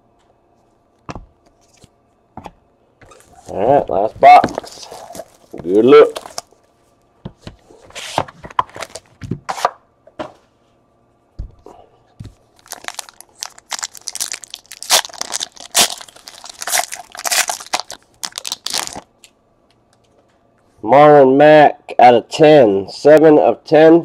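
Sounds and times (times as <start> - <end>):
foil wrapper tearing and crinkling: 4.4 - 6.6, 12.5 - 19.1.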